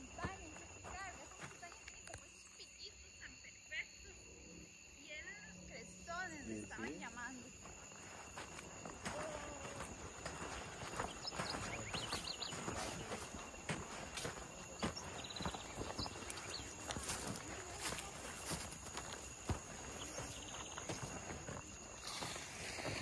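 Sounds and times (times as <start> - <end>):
footsteps on soil: 0.0 - 2.3, 7.1 - 23.0.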